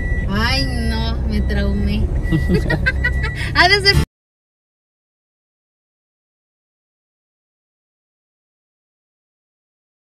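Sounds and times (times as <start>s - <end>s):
car engine and road rumble: 0.0s - 4.1s
man and woman laughing: 2.3s - 3.6s.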